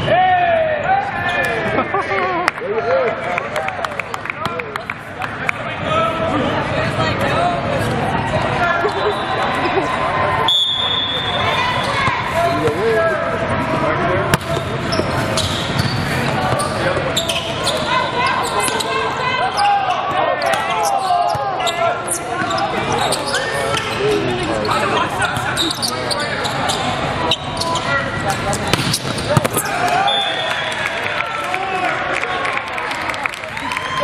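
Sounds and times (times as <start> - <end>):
players and spectators chattering: 0.0 - 34.0
volleyball hits: 14.3 - 17.0, 28.5 - 30.7.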